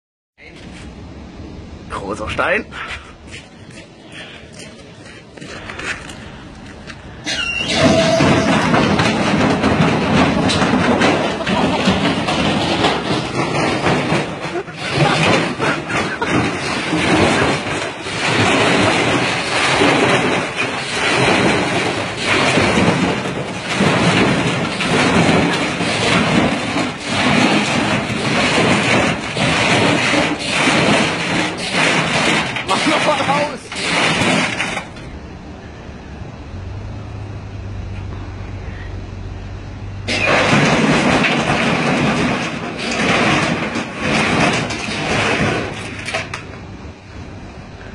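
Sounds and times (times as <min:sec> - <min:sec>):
stone clattering in washing machine: 0:07.6 - 0:35.0, 0:40.1 - 0:46.5
low hum: 0:33.6 - 0:47.9.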